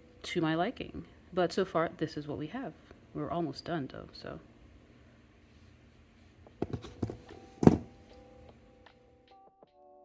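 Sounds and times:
sharp thumps and knocks: 6.6 - 7.9.

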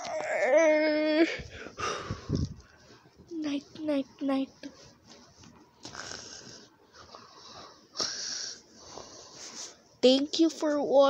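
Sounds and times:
faint breathing: 1.3 - 3.0, 5.8 - 9.8.

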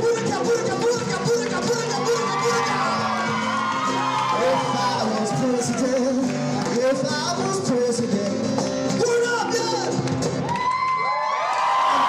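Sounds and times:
audience cheering and whooping: 1.6 - 6.7, 10.4 - 12.0.

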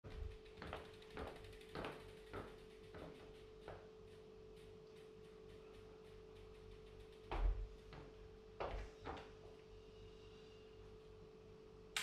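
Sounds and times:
bicycle wheel clicks and knocks: 0.0 - 9.3
faint steady hum: 0.1 - 12.0.

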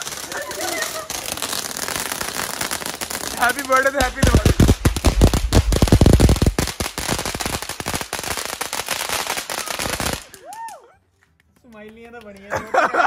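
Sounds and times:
fireworks cracking and popping: 0.0 - 12.6.

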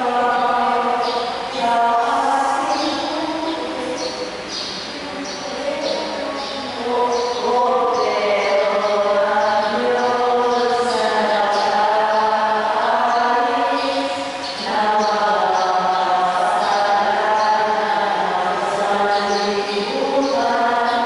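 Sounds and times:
voices singing a hymn: 0.0 - 21.0.

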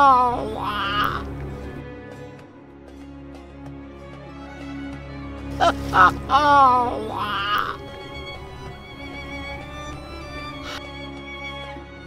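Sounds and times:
man crying wail: 0.0 - 1.3, 5.6 - 7.9
sad background music: 0.0 - 12.0.

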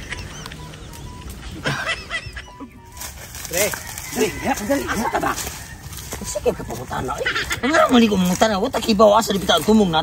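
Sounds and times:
outdoor background noise: 0.0 - 10.0
man speaking: 6.1 - 10.0.

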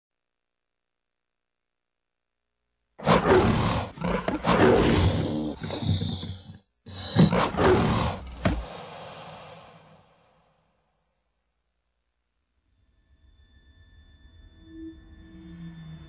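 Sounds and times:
animal roars: 3.0 - 10.4.

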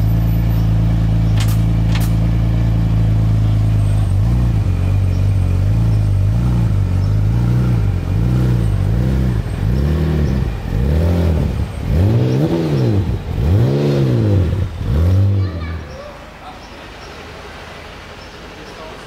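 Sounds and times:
car engine revving: 0.0 - 16.0.

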